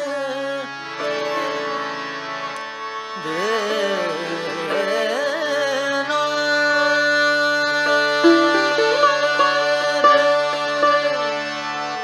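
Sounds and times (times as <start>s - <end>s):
harmonium playing: 0.0s - 12.0s
sarangi: 0.0s - 12.0s.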